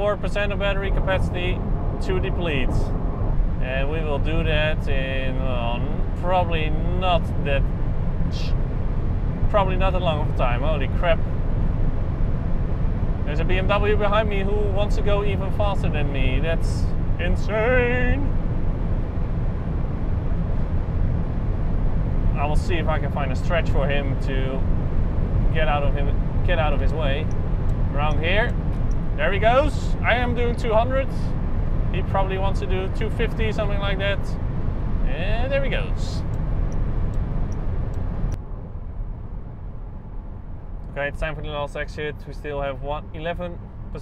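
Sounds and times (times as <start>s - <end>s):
road and wind noise in car cabin: 0.0s - 44.0s.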